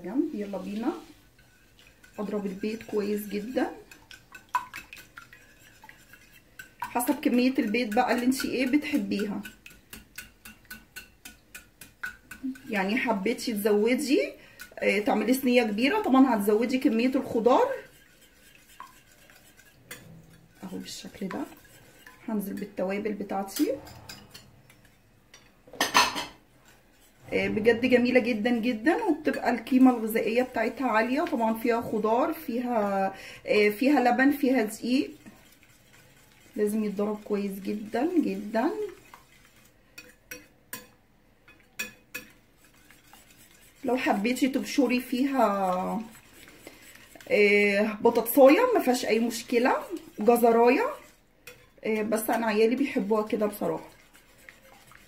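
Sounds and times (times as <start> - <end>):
whisk swishing batter: 0.0 - 55.0
whisk clicking against bowl: 0.7 - 25.5, 27.9 - 33.0, 33.6 - 55.0.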